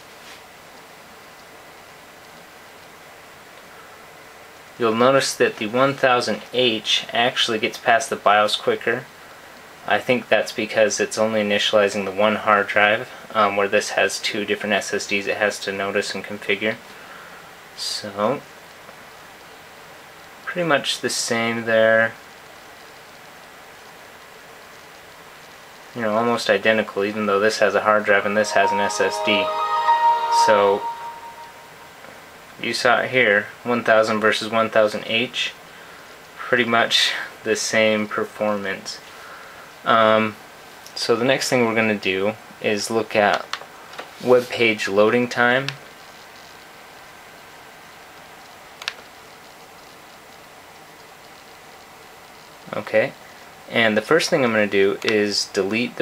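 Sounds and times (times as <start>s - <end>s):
faint room tone hiss: 0.0s - 56.0s.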